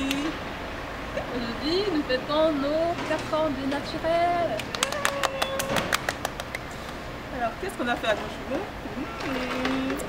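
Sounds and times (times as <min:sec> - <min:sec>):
people clapping: 0:04.5 - 0:07.0.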